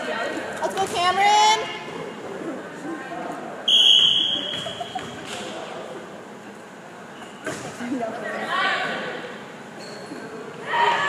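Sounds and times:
crowd voices: 0.0 - 11.0
referee's whistle blast: 3.7 - 4.9.

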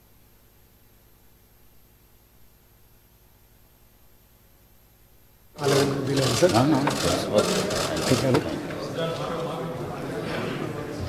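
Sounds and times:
faint low hum: 0.0 - 6.5
crowd of people talking: 5.6 - 11.0.

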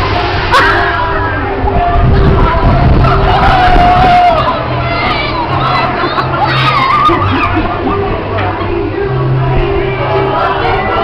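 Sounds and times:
people screaming and shouting: 0.0 - 11.0
people laughing: 5.5 - 8.9.

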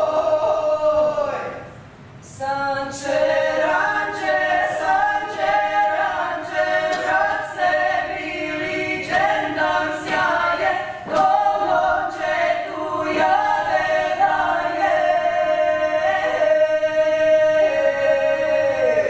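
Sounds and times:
women singing a cappella: 0.0 - 19.0.

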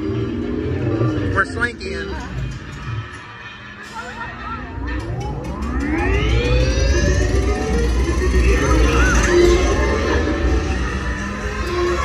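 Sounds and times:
rising multi-pitch whine: 0.0 - 12.0.

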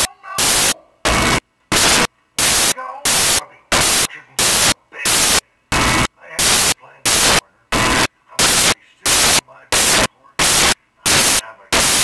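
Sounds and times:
faint dialogue: 0.0 - 12.0
static hiss bursts: 0.0 - 12.0.

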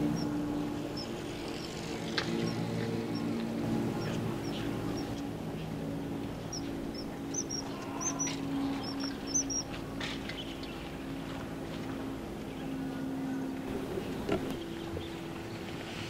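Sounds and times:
kingfisher calling: 0.0 - 11.0
steady low hum: 0.0 - 16.0.

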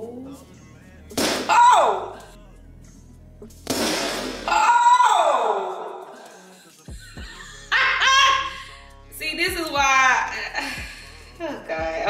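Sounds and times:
high-pitched yelp: 1.5 - 2.2.

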